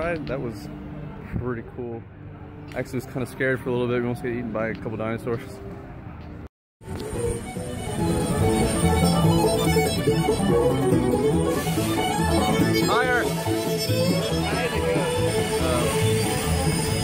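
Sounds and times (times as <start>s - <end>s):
instrumental music with steady beat: 6.8s - 17.0s.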